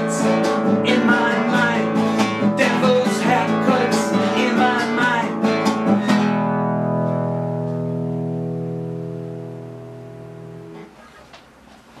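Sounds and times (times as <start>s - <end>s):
classical guitar chord ringing: 0.0s - 11.0s.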